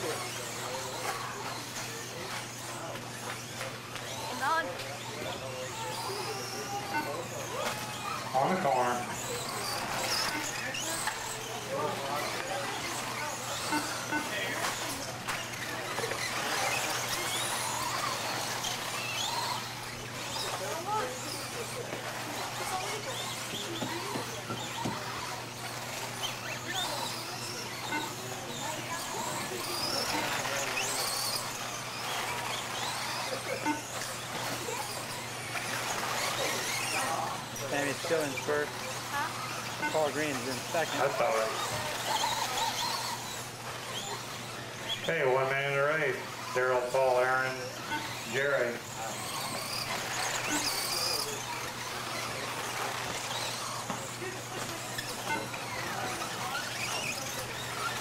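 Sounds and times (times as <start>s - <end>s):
rc car motors whining: 0.0s - 58.0s.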